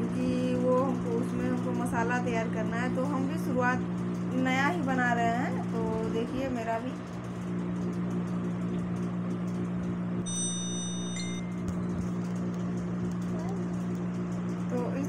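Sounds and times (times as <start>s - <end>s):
steady low hum: 0.0s - 15.0s
high electronic tones: 10.3s - 11.6s.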